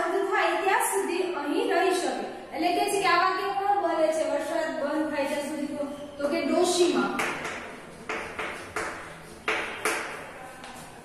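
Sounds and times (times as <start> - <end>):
chalk writing on blackboard: 7.1 - 11.0.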